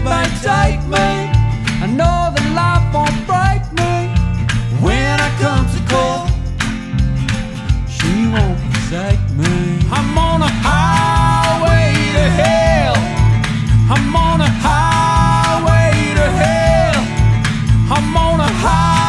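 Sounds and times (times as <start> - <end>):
person singing: 0.0 - 6.5, 7.9 - 19.0
strummed acoustic guitars: 0.0 - 19.0
kick drum beat: 0.6 - 19.0.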